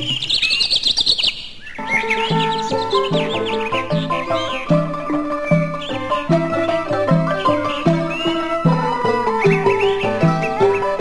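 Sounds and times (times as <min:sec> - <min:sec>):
bird chirping: 0:00.0 - 0:11.0
instrumental music: 0:01.8 - 0:11.0.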